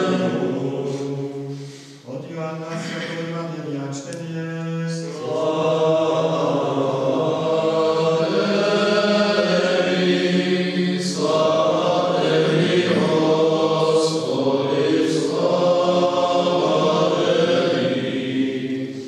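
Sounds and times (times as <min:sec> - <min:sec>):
men chanting: 0:00.0 - 0:01.6, 0:04.6 - 0:19.0.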